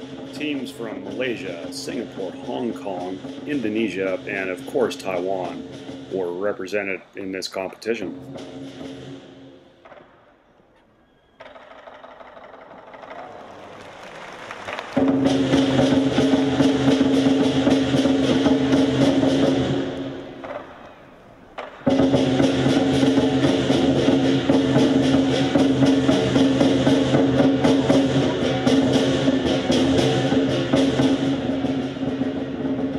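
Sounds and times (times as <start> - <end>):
percussion band playing: 0.0 - 10.2, 11.4 - 32.9.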